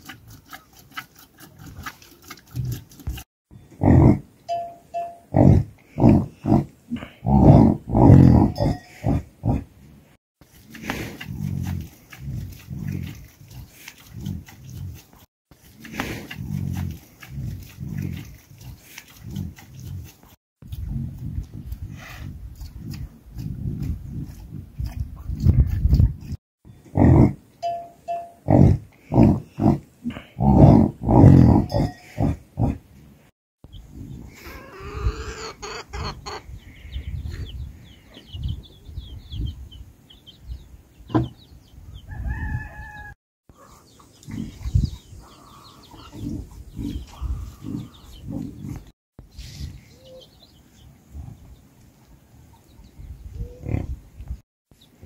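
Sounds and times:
yaks grunting: 1.6s - 4.2s, 5.3s - 9.7s, 28.4s - 32.8s, 43.6s - 48.9s, 53.6s - 54.0s.

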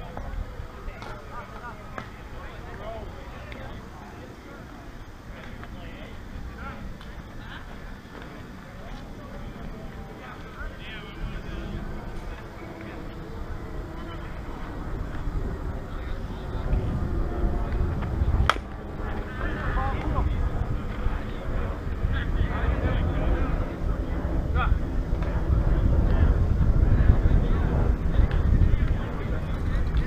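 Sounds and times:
distant players' voices: 0.0s - 30.0s
bat cracking a ball: 18.4s - 18.8s.

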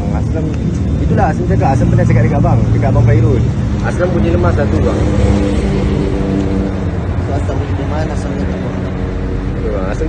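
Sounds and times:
low rumble: 0.0s - 10.0s
vehicle engine drone: 0.0s - 10.0s.

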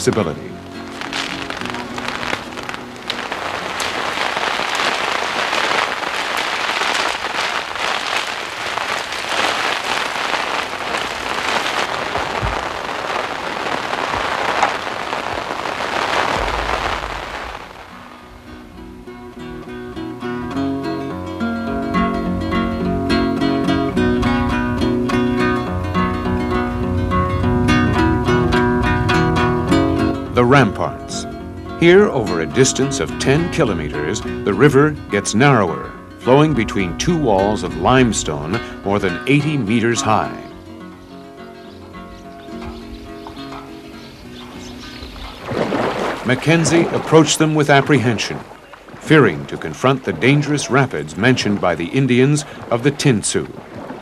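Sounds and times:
strummed acoustic guitar music: 0.0s - 11.4s, 17.8s - 54.0s
wind and rain beating on tents: 0.0s - 54.0s.

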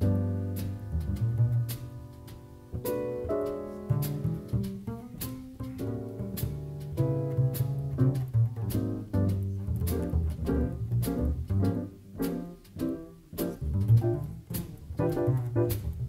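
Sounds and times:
piano chords and runs: 0.0s - 16.0s
plucked double bass: 0.0s - 16.0s.

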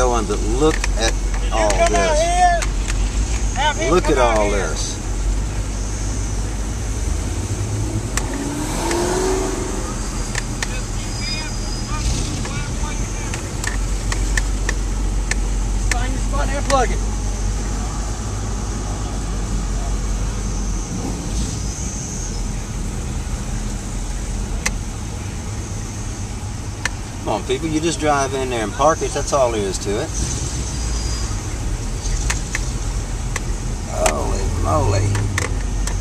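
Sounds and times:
indistinct voices: 0.0s - 5.1s, 33.8s - 36.0s
car engine idling: 0.0s - 36.0s.

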